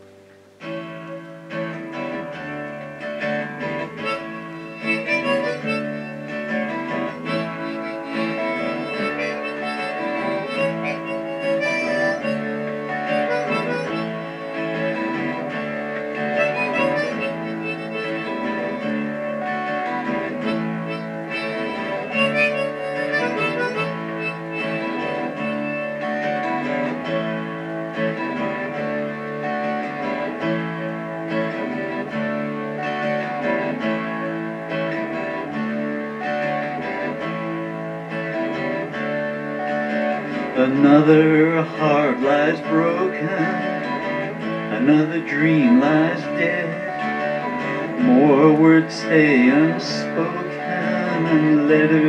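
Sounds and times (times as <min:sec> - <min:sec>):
acoustic guitar strumming: 0:00.0 - 0:52.0
harmonica melody: 0:00.0 - 0:52.0.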